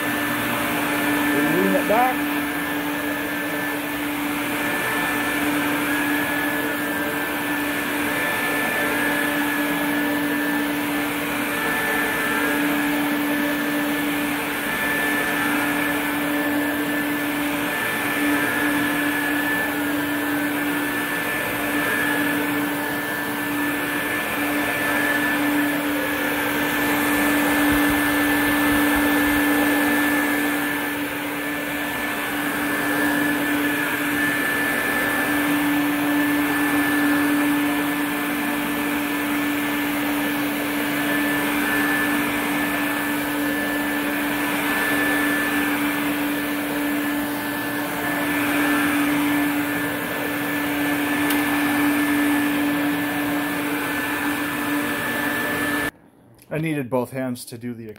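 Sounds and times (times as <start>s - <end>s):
vacuum cleaner motor whine: 0.0s - 56.0s.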